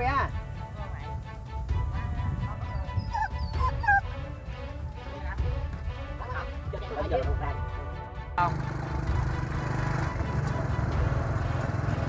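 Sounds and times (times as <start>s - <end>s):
background music: 0.0s - 12.0s
dog whining and yipping: 2.6s - 4.0s.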